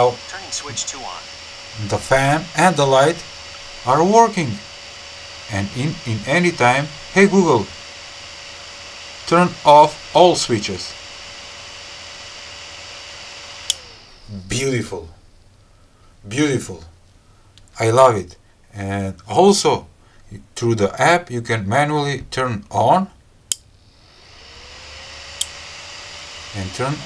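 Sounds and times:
cooling fan humming: 0.0s - 27.0s
sharp relay click: 13.6s - 13.9s, 25.4s - 25.6s.

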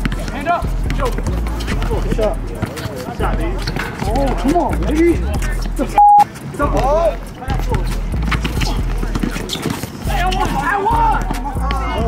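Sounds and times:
basketball bouncing on concrete: 0.0s - 5.0s, 7.6s - 12.0s
running footsteps: 0.0s - 12.0s
players shouting: 10.0s - 12.0s.

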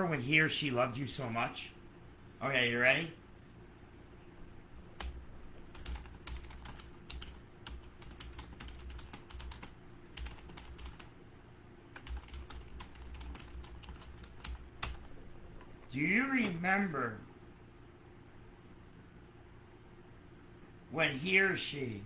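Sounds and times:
computer keyboard typing: 4.9s - 11.1s, 11.9s - 15.7s.

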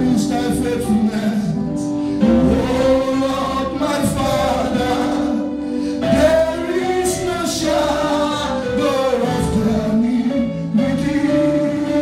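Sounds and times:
instrumental backing music: 0.0s - 12.0s
man singing into a microphone: 0.0s - 12.0s.

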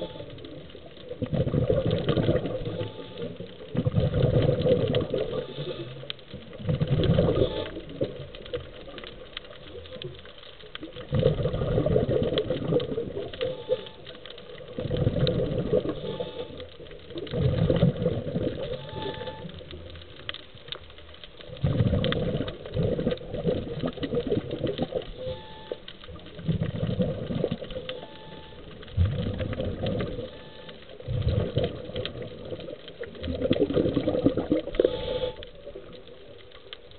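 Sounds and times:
exhaled bubbles gurgling: 0.0s - 36.9s
diver breathing through regulator: 5.3s - 6.1s, 15.8s - 16.7s, 34.7s - 35.4s.

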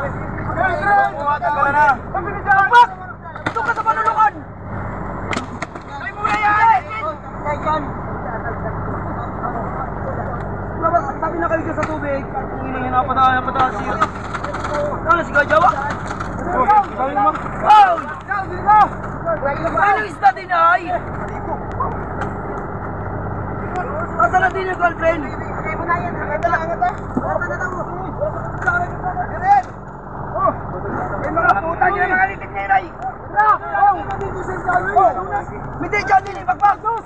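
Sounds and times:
boat engine running: 0.0s - 37.0s.

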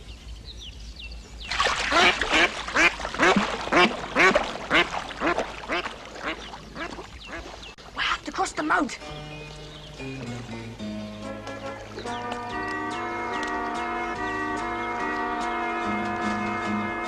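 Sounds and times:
duck quacking: 1.9s - 7.6s.

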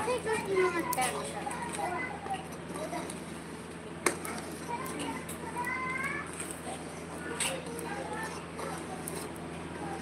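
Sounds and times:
children's voices: 0.0s - 10.0s.

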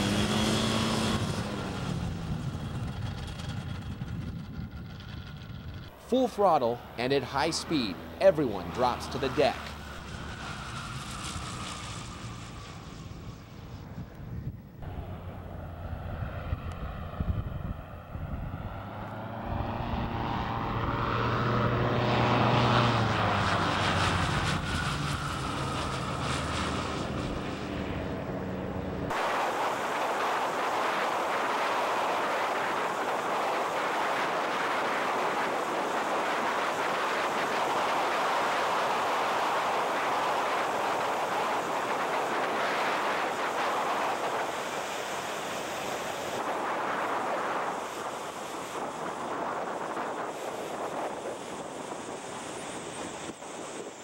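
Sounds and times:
ultralight trike engine passing: 0.0s - 29.2s
engine and wind rushing: 0.0s - 54.0s.

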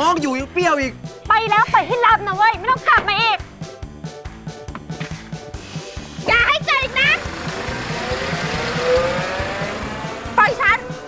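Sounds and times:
background music: 0.0s - 11.0s
woman shouting: 1.3s - 3.4s, 6.3s - 7.2s
car engine driving off: 6.3s - 11.0s.

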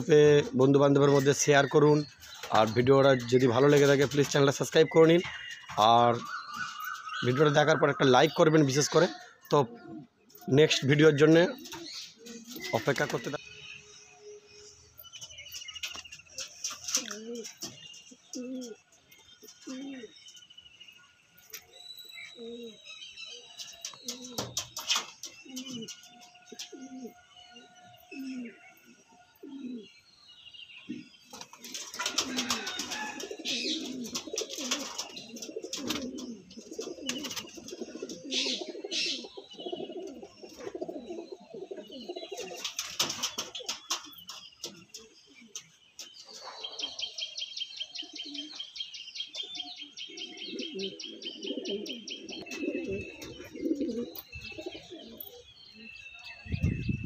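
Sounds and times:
pigeons cooing: 0.0s - 20.4s, 21.5s - 30.1s, 30.8s - 57.0s.

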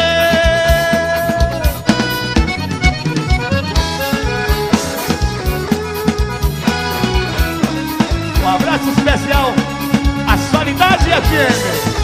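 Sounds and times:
accordion melody: 0.0s - 12.0s
drum kit beat: 0.0s - 12.0s
electric guitar: 0.0s - 12.0s.

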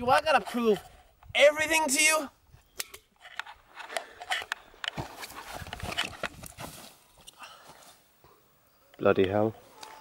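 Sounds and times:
soft scuffling on grass: 4.9s - 8.0s.

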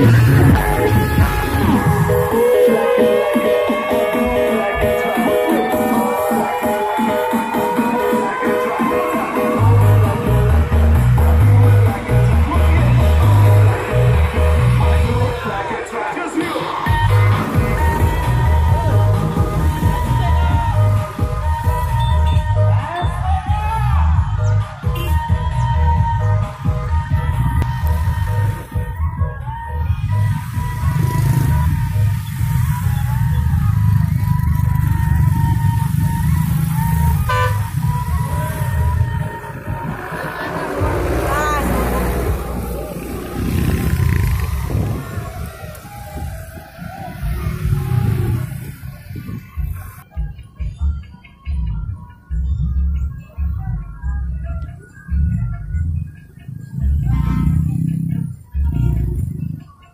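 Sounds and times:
voices: 0.0s - 51.6s
loud music with deep bass: 0.0s - 59.9s
vehicle engines: 0.0s - 59.9s.

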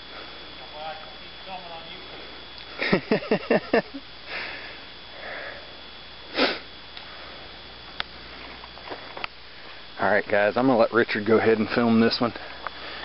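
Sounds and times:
person sniffing: 6.3s - 6.7s.

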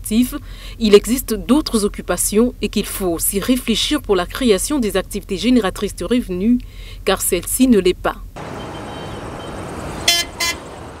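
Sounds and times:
high-pitched vehicle horn toots: 8.4s - 11.0s
street traffic noise: 8.4s - 11.0s.

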